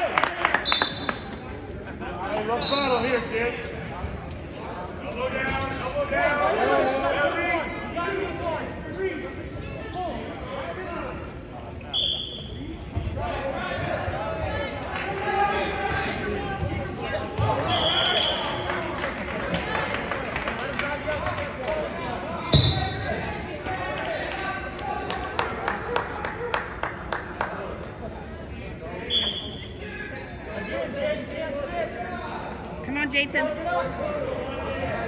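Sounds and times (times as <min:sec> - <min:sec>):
referee's whistle blasts: 0:00.6 - 0:01.3, 0:11.9 - 0:12.6, 0:17.5 - 0:18.6, 0:22.5 - 0:23.1, 0:29.1 - 0:29.8.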